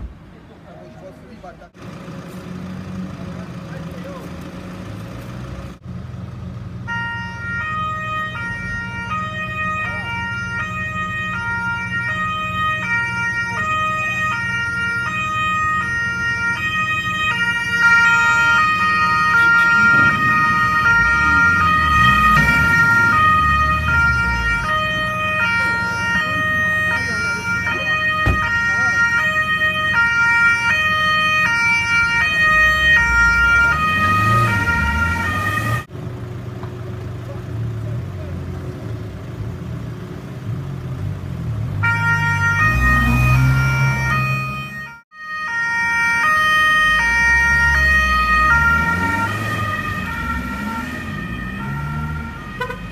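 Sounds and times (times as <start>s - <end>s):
car engine rumbling: 0.0s - 44.9s, 46.8s - 52.9s
two-tone emergency siren: 6.8s - 35.9s, 41.8s - 52.9s.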